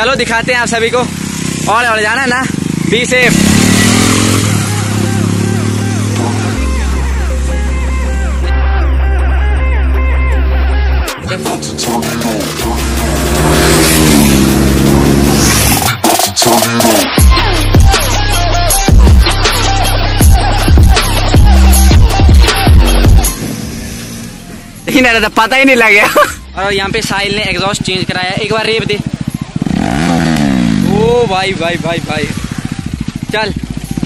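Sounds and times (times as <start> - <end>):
motorcycle engines accelerating: 0.0 - 9.0, 10.4 - 34.0.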